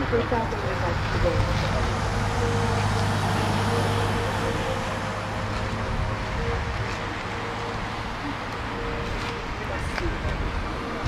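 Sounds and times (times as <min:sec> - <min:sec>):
engine rumble: 0:00.0 - 0:11.0.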